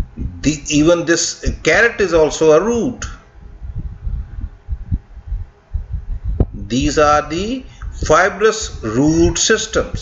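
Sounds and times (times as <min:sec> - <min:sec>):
soft low thumps and rumbles: 0:00.0 - 0:00.6, 0:03.0 - 0:10.0.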